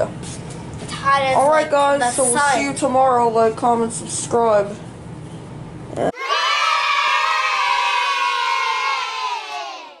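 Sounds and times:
children cheering and shouting: 0:06.2 - 0:10.0.

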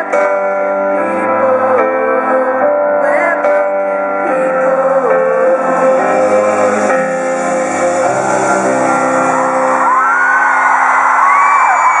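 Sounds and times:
crowd screaming and whooping: 0:08.2 - 0:12.0.

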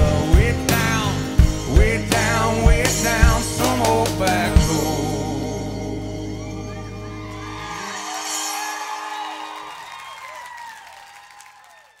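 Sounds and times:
audience cheering and whooping: 0:06.4 - 0:12.0.

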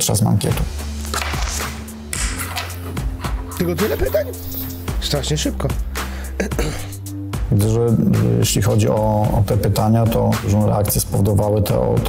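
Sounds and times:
background music with drone: 0:00.6 - 0:09.8.

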